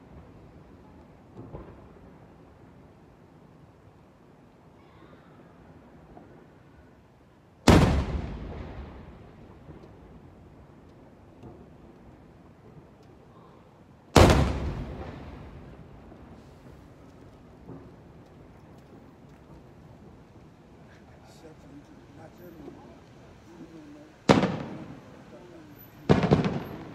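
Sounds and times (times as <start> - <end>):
firework shells bursting: 23.6 - 26.9.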